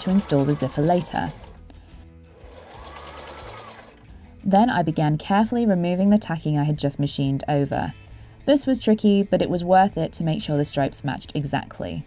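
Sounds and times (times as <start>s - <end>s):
sewing machine stitching: 0.0s - 1.6s, 2.4s - 4.1s.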